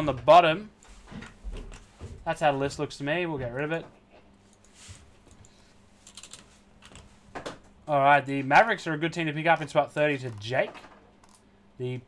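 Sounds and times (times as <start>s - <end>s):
computer keyboard clicks: 6.1s - 7.0s.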